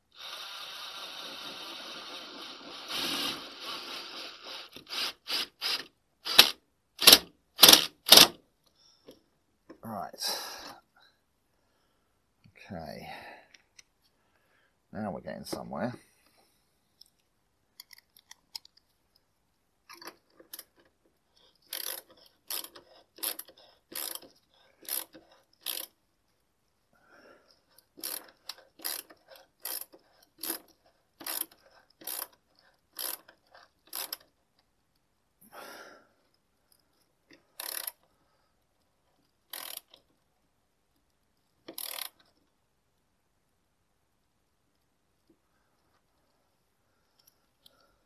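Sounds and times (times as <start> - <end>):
hose clamp clicking: 41.7 - 42.2.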